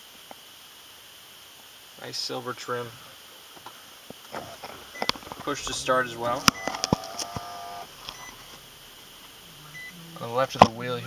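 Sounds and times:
dashboard warning chime: 4.9 - 8.5, 9.6 - 10.4.

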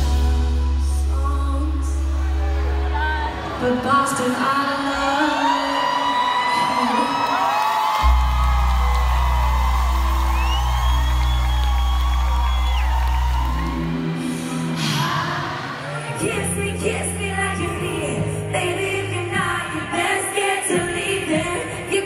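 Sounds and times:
live concert music: 0.0 - 22.0
crowd cheering and whooping: 2.2 - 16.5
deep bass note: 8.0 - 13.8.

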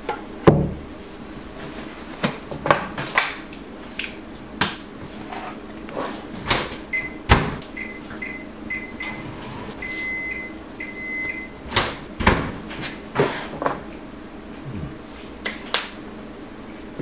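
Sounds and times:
microwave door shutting: 6.4 - 10.0, 11.6 - 12.7
longer microwave beeps: 6.9 - 11.7
keypad beeps: 7.8 - 9.2, 9.8 - 11.6.

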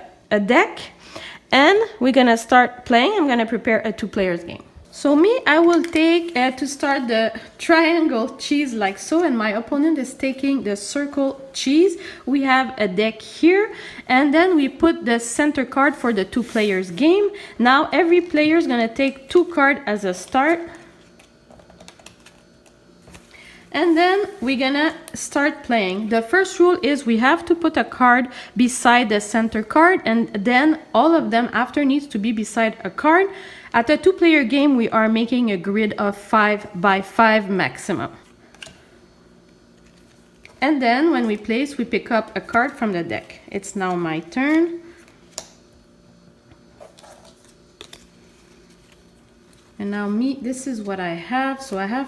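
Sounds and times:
faint steady hum: 0.0 - 52.0
playing cards clicking and rustling: 20.8 - 23.3, 38.5 - 38.8, 39.7 - 40.6, 45.0 - 45.6, 46.8 - 49.7.

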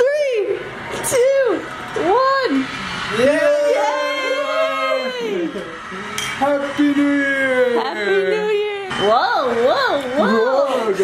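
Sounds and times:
people shouting and cheering: 3.0 - 10.9.

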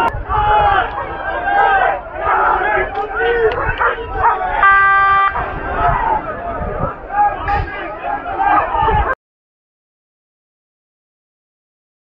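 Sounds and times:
fans shouting and yelling: 0.0 - 9.2
horn sounding: 4.2 - 6.2.

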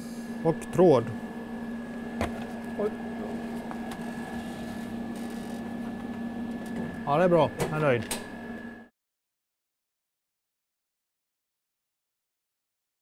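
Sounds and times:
machine hum with high whine: 0.0 - 8.9.

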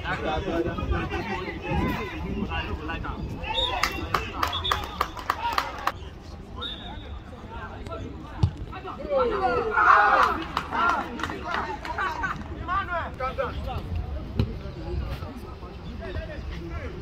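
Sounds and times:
people shouting outdoors: 8.9 - 13.1.

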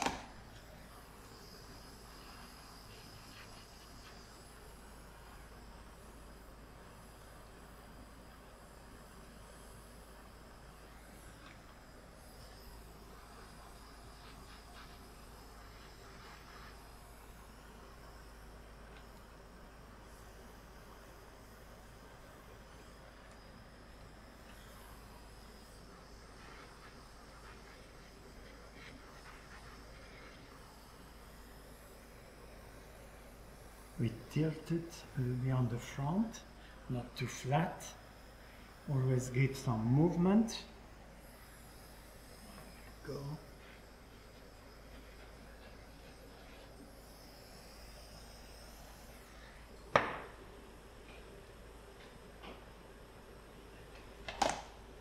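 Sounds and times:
desk fan humming: 0.0 - 55.0.

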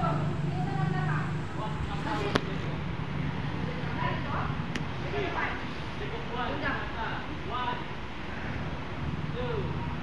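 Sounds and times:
people talking indistinctly: 0.0 - 9.8
steady background noise: 0.0 - 10.0.

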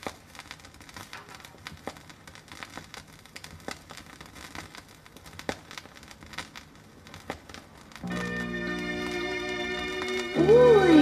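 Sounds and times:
vinyl crackles and pops: 0.0 - 11.0
vinyl surface hiss: 0.0 - 11.0.

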